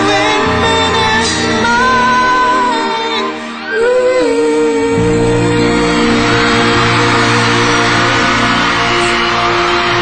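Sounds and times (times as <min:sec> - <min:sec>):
live band chords: 0:00.0 - 0:10.0
audience cheering and applauding: 0:05.0 - 0:10.0.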